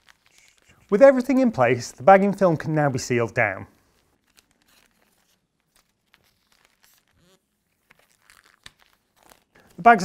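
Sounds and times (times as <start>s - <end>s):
plastic film crinkling: 0.0s - 10.0s.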